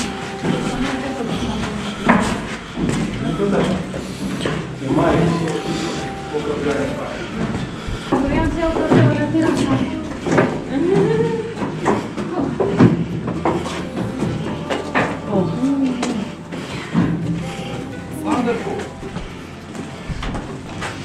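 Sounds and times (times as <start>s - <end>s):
people talking: 0.0s - 11.6s, 13.8s - 16.4s, 17.4s - 19.0s
footsteps on wooden walkway: 0.0s - 21.0s.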